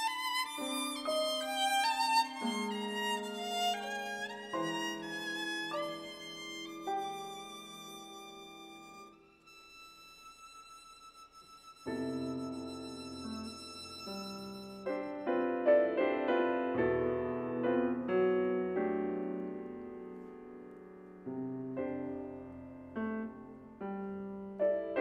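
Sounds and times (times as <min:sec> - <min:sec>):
piano chords: 0:00.0 - 0:09.4, 0:11.8 - 0:25.0
violin sustained note: 0:00.0 - 0:15.5.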